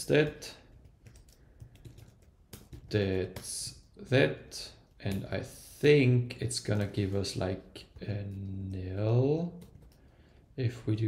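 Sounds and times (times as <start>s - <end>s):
computer keyboard typing: 0.6s - 3.5s, 9.4s - 10.2s.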